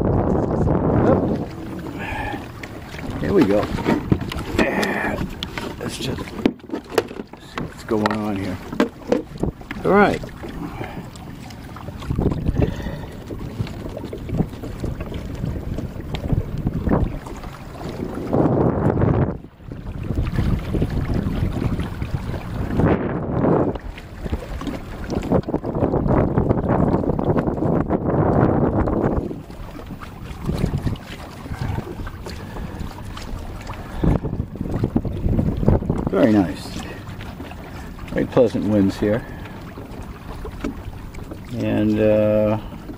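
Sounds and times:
water splashing against hull: 0:00.0 - 0:42.9
wind buffeting microphone: 0:00.0 - 0:42.9.

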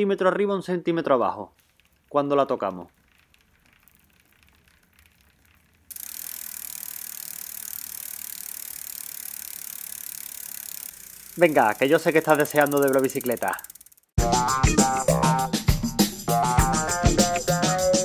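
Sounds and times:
faint clicks on bicycle chain: 0:02.7 - 0:14.2
bicycle freewheel ticking: 0:02.9 - 0:14.2.

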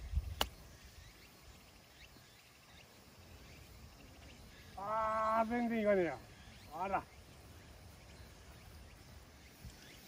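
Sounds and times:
faint bird chirps: 0:00.0 - 0:10.0.

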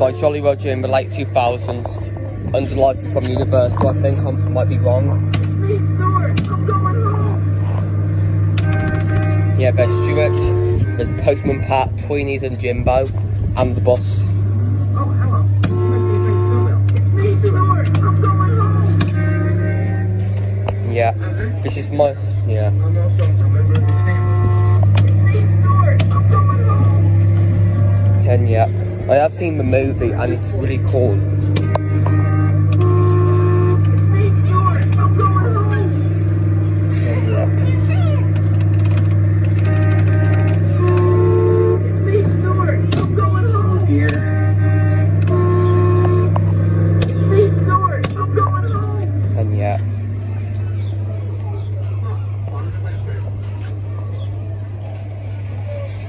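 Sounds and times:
kiddie ride low hum: 0:00.0 - 0:56.0.

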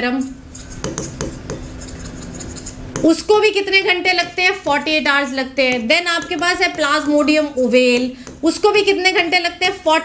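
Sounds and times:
chalk tapping and scraping on blackboard: 0:00.2 - 0:03.2, 0:04.1 - 0:09.8.

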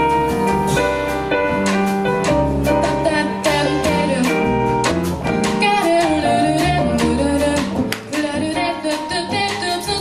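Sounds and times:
drum kit: 0:00.0 - 0:10.0
grand piano: 0:00.0 - 0:10.0
plucked double bass: 0:00.0 - 0:10.0
woman singing wordless melody: 0:02.9 - 0:04.5, 0:05.6 - 0:10.0.

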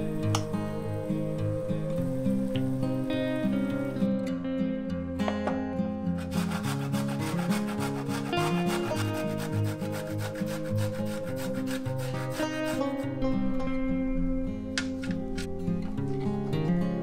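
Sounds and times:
acoustic guitar music: 0:00.0 - 0:17.0
ginger grated on metal grater: 0:06.2 - 0:13.2.

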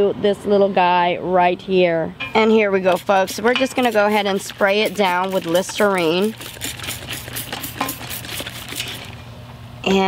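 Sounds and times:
spray bottle spritzing: 0:02.8 - 0:09.2.

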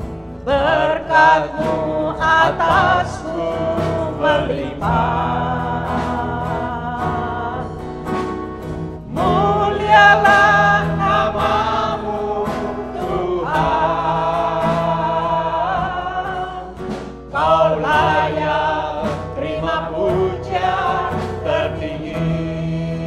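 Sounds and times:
acoustic guitar: 0:00.0 - 0:23.0
group singing worship song: 0:00.0 - 0:23.0.

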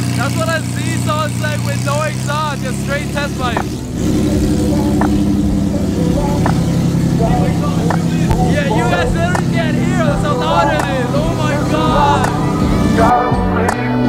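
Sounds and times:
car engine idling: 0:00.0 - 0:14.0
voices: 0:00.0 - 0:14.0.

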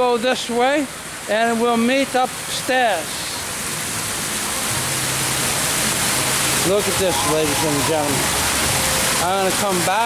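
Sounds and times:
fountain water splashing: 0:00.0 - 0:10.0.

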